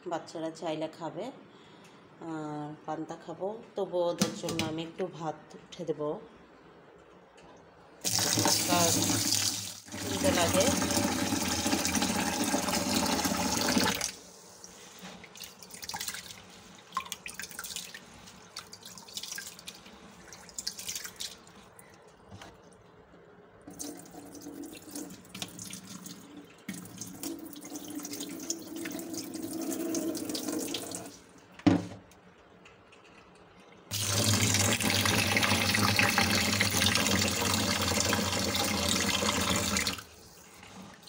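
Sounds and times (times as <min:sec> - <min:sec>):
tap water running into bowl: 0:08.0 - 0:14.2, 0:23.6 - 0:31.2, 0:33.9 - 0:40.1
water pouring into sink: 0:08.0 - 0:21.6, 0:23.6 - 0:31.2, 0:33.9 - 0:41.0.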